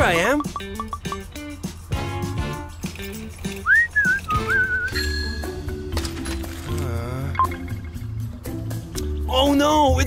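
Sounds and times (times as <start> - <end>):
background music with beat: 0.0 - 5.9, 6.7 - 10.0.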